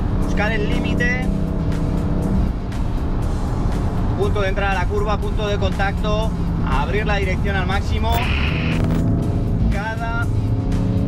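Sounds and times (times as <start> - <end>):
background music: 0.0 - 11.0
car engine rumble: 0.0 - 11.0.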